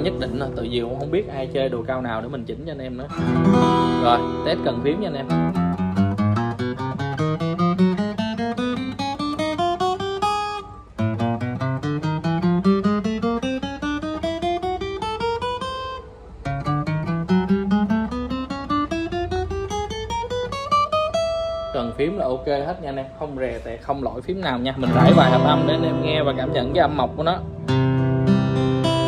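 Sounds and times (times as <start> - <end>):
acoustic guitar single notes: 3.1 - 24.2, 24.8 - 29.0.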